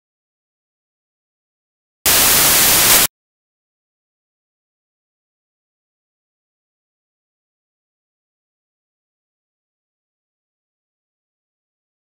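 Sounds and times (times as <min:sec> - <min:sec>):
static hiss burst: 0:02.1 - 0:03.1.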